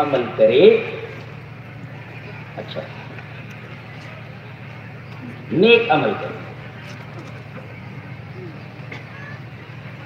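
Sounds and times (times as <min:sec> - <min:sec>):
crowd background noise: 0:00.0 - 0:10.0
faint distant voices: 0:00.3 - 0:10.0.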